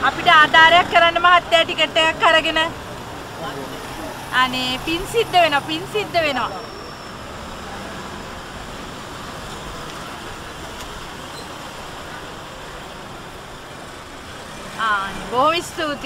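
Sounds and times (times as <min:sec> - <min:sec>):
road traffic noise: 0:00.0 - 0:16.0.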